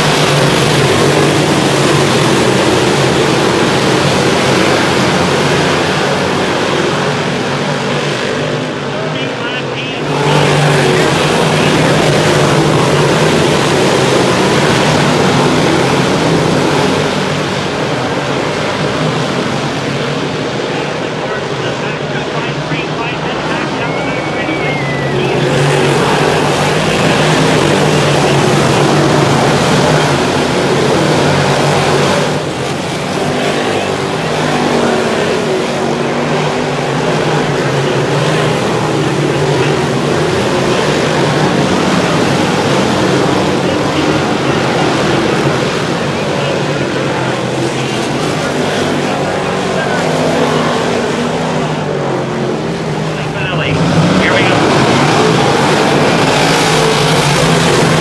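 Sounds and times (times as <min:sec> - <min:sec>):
race cars running hard: 0:00.0 - 0:58.0.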